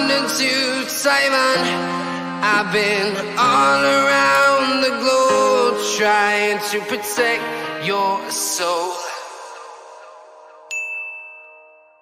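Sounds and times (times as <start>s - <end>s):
bright bell ding: 10.7s - 12.0s.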